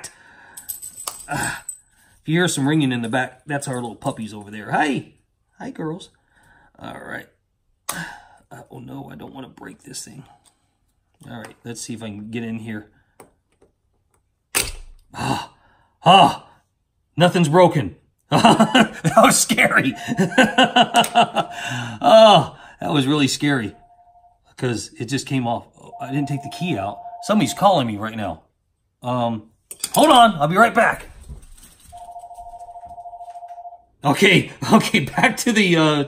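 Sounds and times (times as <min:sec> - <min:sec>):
telephone ringing: 0:19.7 - 0:21.8, 0:23.4 - 0:24.4, 0:25.9 - 0:28.0, 0:31.9 - 0:33.9.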